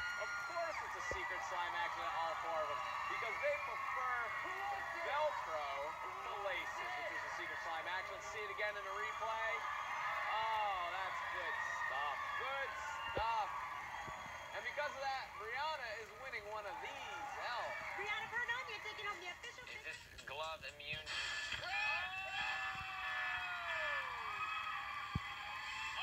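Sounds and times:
excited voices shouting and squealing: 0.0 - 19.9.

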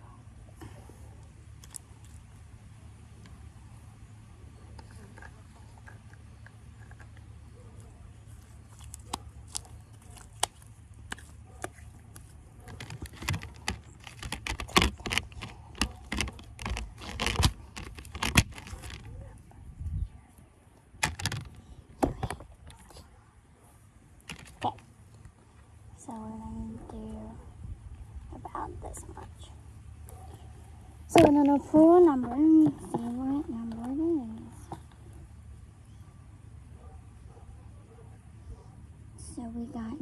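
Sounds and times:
steady low hum: 0.0 - 40.0.

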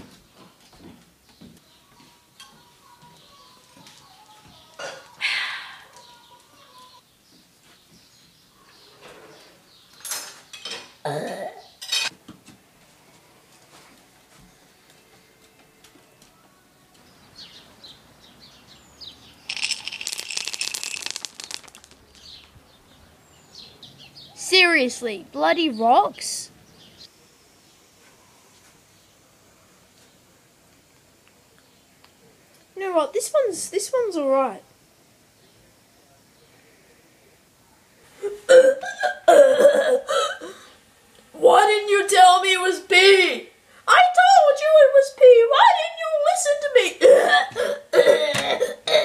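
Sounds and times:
small birds chirping: 0.2 - 10.6, 16.0 - 29.2
loud rapid rattling: 19.5 - 22.4.

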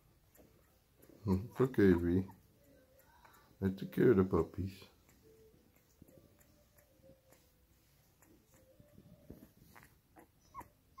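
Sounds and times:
puppy squeaking: 1.4 - 2.5, 8.2 - 11.0.

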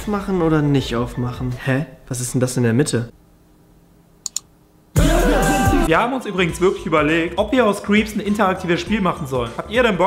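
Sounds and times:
computer clicks: 4.2 - 4.5.

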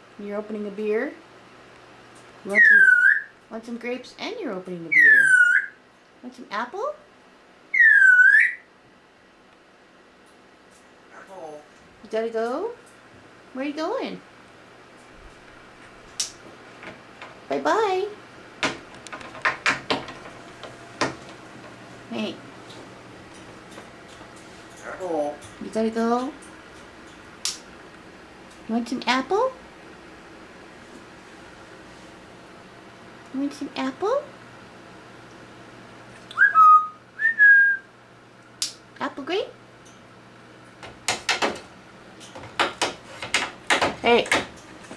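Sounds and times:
parrot whistle: 2.5 - 3.3, 4.9 - 5.8, 7.7 - 8.7, 36.3 - 37.9.

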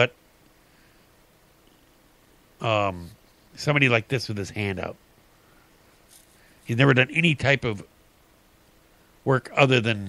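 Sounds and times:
man speaking: 2.6 - 5.0, 6.7 - 7.9, 9.3 - 10.0.

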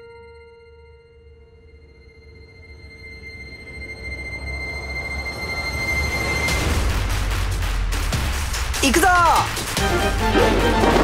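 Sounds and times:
high ringing tone: 0.0 - 6.5
rushing noise: 2.8 - 8.9.

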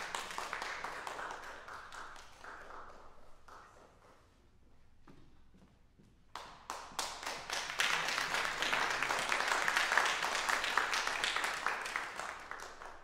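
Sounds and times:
audience applauding: 0.0 - 4.0, 6.6 - 13.0.

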